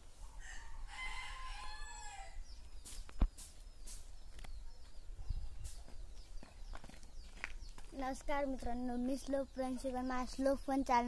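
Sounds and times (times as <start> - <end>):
small birds chirping: 0.0 - 11.0
rooster crowing: 0.4 - 2.4.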